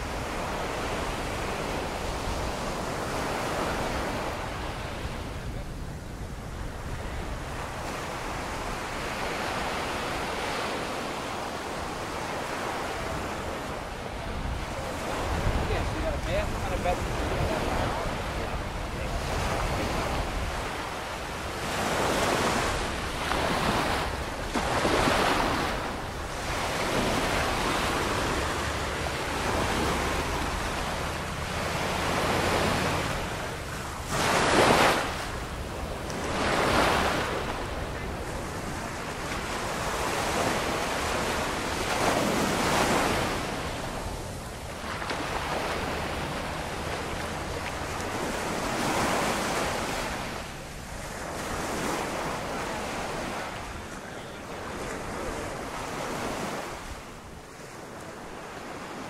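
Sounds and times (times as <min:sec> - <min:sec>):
wind on microphone: 0:00.0 - 0:55.6
ocean waves breaking on shore: 0:00.0 - 0:59.0.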